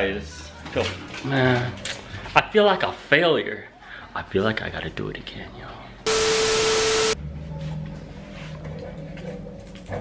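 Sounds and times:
loud static hiss with tone: 6.1s - 7.2s.

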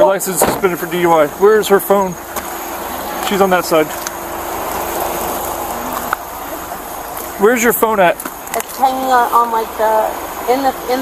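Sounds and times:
car engine idling: 0.0s - 11.0s
faint constant tone: 0.0s - 11.0s.

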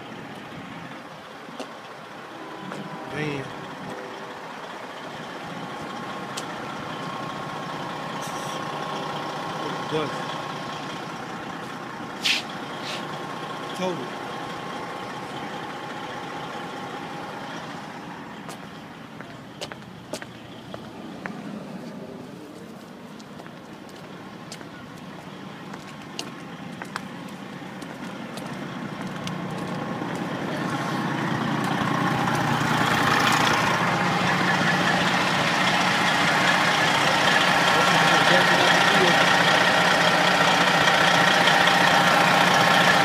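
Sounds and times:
vehicle engine noise: 0.0s - 43.0s.

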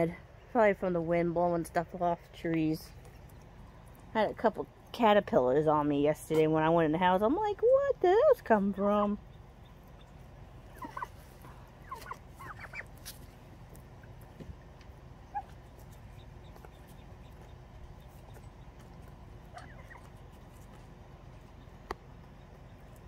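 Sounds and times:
faint outdoor background: 0.0s - 23.0s
turkeys chirping: 2.9s - 4.1s, 8.4s - 23.0s.

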